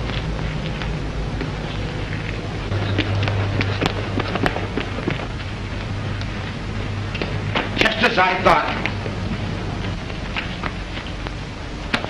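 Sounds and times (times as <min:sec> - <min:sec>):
crackles and clicks: 0:00.0 - 0:12.0
film soundtrack hiss: 0:00.0 - 0:12.0
low hum: 0:00.0 - 0:12.0.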